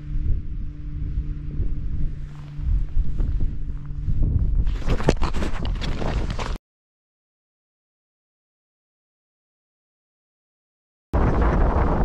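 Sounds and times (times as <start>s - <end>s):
wind buffeting microphone: 0.0s - 6.6s, 11.2s - 12.0s
footsteps on stone: 4.6s - 6.6s.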